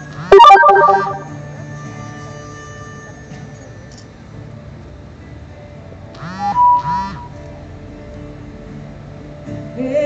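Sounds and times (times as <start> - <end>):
acoustic guitar: 0.0 - 10.0
harmonica bent notes: 6.3 - 7.4.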